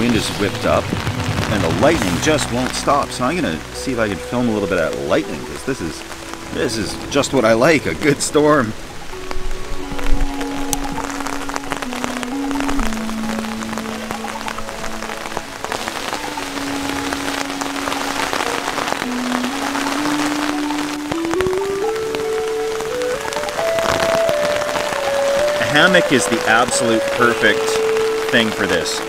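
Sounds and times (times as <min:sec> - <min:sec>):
heavy rain on a tarp: 0:00.0 - 0:29.0
slow background music: 0:00.0 - 0:29.0.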